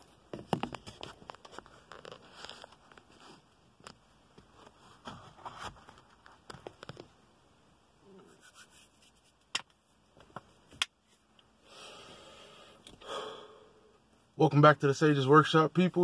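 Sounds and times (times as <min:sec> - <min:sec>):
handling and movement noises: 0:00.0 - 0:07.1
soft breathy rush: 0:11.6 - 0:14.0.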